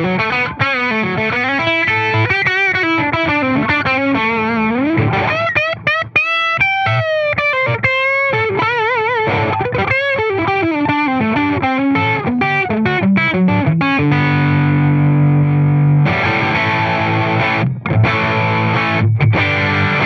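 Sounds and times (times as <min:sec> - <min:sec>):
overdriven electric guitar lead: 0:00.0 - 0:20.0.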